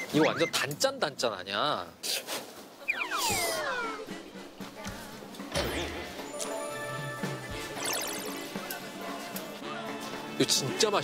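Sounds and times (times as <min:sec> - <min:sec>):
background music: 0:03.0 - 0:11.0.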